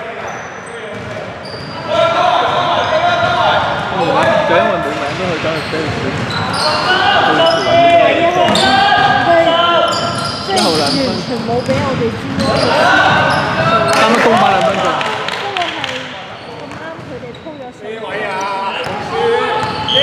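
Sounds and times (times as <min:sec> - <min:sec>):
voices calling out: 0:01.6 - 0:20.0.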